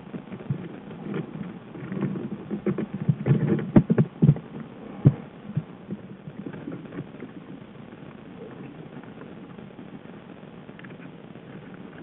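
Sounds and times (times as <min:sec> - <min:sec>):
bear moving muffled thumps: 0:00.0 - 0:07.5.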